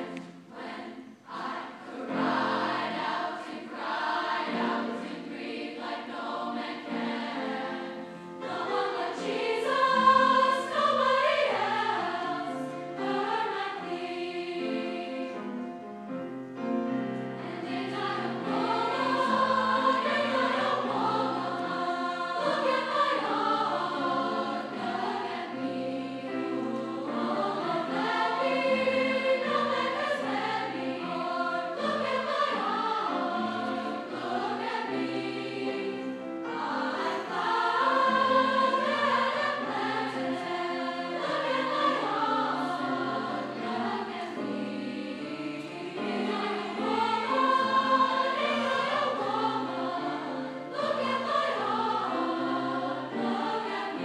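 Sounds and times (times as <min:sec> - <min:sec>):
large choir singing: 0:00.0 - 0:54.0.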